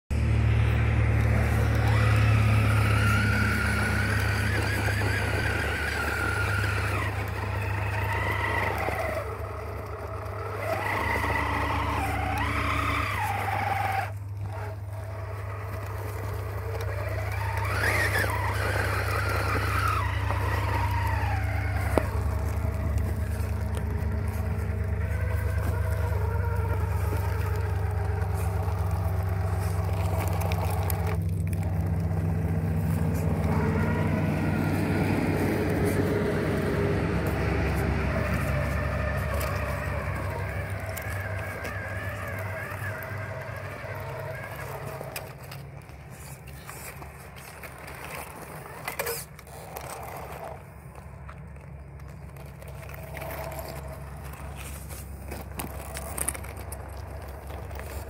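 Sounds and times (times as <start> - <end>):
low rumble of traffic: 0.0 - 58.0
electric motor whining: 0.1 - 58.0.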